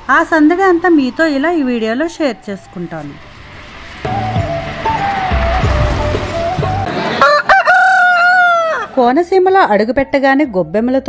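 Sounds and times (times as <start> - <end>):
rooster crowing: 6.9 - 9.0.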